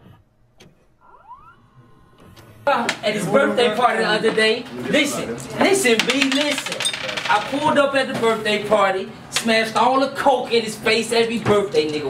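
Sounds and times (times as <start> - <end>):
rising motor whine: 1.0 - 2.7.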